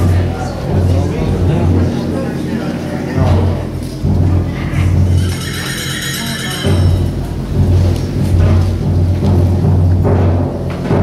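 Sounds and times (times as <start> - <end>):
deep bass notes: 0.0 - 5.4, 6.6 - 11.0
concert band playing: 0.0 - 10.0
high shrill held note: 4.7 - 7.2.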